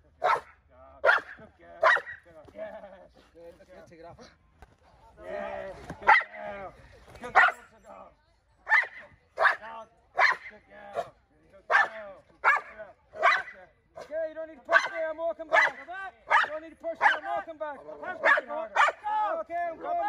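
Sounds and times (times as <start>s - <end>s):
dog barking: 0.2s - 2.2s, 6.0s - 6.3s, 7.3s - 7.6s, 8.7s - 11.1s, 11.7s - 13.6s, 14.7s - 17.4s, 18.2s - 19.0s.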